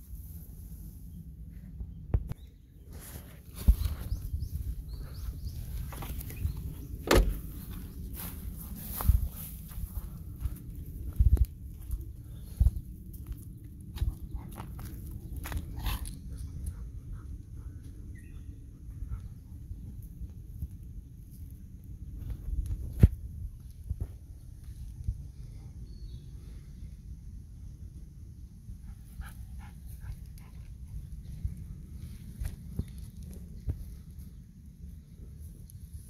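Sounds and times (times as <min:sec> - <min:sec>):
steady low rumble: 0:00.0 - 0:36.0.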